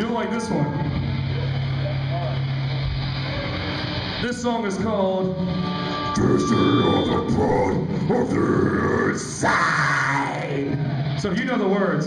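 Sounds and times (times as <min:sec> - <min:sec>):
faint crowd chatter: 0:00.0 - 0:07.7
amplifier hum: 0:00.0 - 0:09.1.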